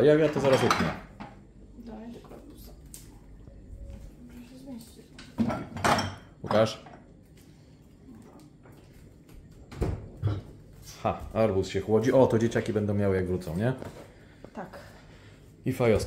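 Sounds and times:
glass jars clinking on shelves: 5.4 - 7.0.

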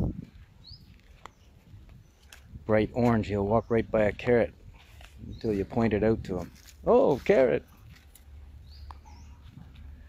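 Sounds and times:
high bird chirps: 0.6 - 2.3.

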